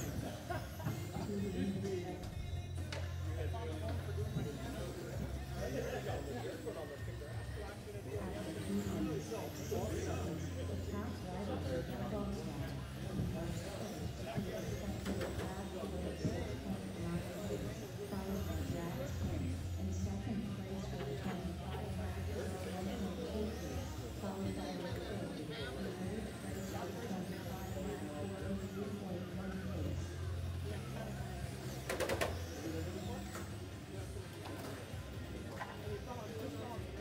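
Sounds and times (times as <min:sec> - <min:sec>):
indistinct voices in a hall: 0:00.0 - 0:37.0
rc cars whining past: 0:04.5 - 0:35.2.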